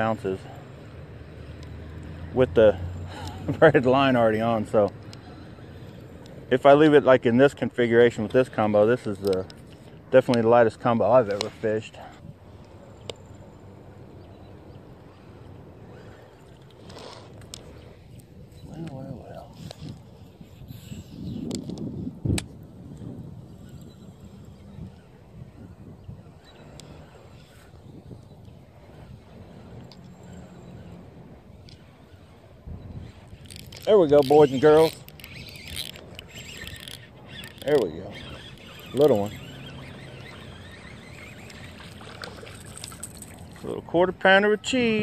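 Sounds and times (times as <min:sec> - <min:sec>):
fishing reel whirring: 0:00.0 - 0:45.0.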